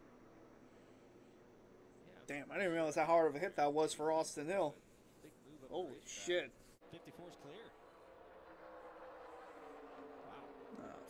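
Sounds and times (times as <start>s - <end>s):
race car engines droning: 0.0s - 11.0s
television voice: 1.9s - 7.8s.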